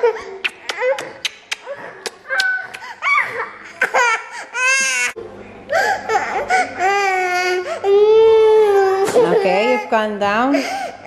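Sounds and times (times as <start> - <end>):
young children laughing: 0.0 - 5.1
toddler crying: 6.1 - 10.1.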